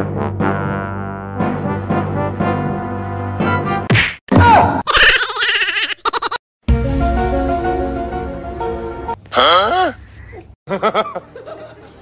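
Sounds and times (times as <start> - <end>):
loud whack-like hits: 3.9 - 4.8.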